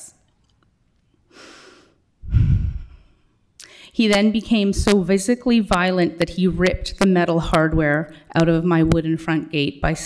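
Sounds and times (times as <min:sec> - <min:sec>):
woman breathing in: 0:01.3 - 0:04.0.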